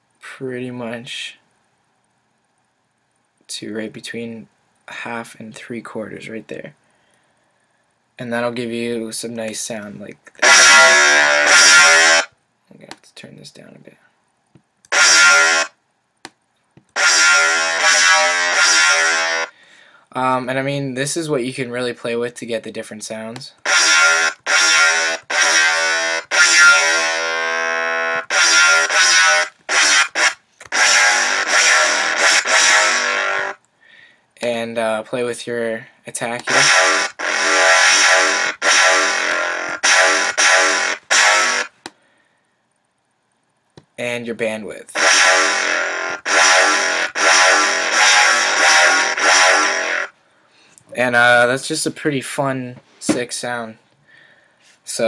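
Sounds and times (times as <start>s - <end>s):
synthesized dubstep bass notes: 10.4s - 12.3s, 14.9s - 15.7s, 17.0s - 19.5s, 23.7s - 33.6s, 36.5s - 41.8s, 45.0s - 50.1s.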